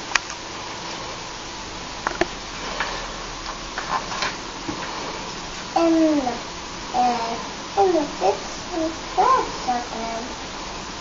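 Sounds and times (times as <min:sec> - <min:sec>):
quiet room noise: 0:00.0 - 0:11.0.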